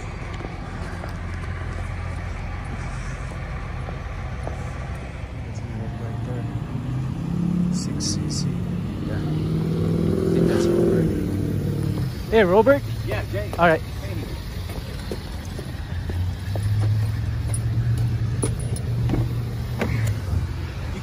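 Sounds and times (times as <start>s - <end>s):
car engine: 0.0s - 21.0s.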